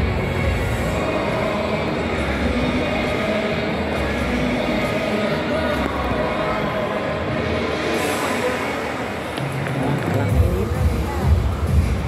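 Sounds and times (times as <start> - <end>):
crowd noise: 0.0 - 12.0.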